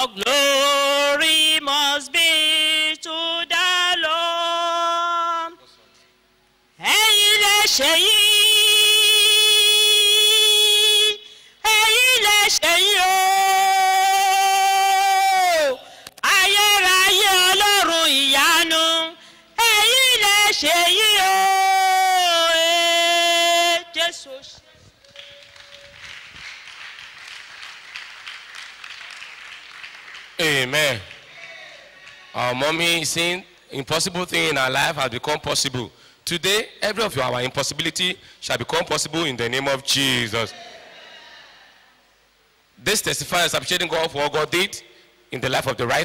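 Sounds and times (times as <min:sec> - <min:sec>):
woman singing a long note: 0:06.8 - 0:24.3
crowd applauding: 0:25.0 - 0:32.4.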